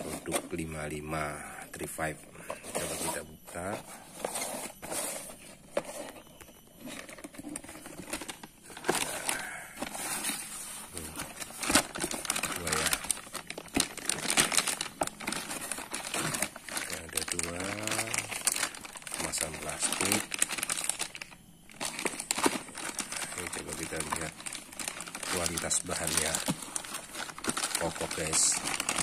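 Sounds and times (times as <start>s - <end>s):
plastic bags crinkling: 0.0s - 29.0s.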